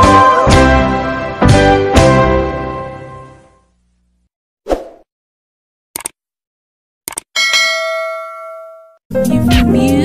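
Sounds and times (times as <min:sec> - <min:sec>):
quick clicks: 0:06.0 - 0:06.2, 0:07.1 - 0:07.3
bright bell ding: 0:07.4 - 0:09.0.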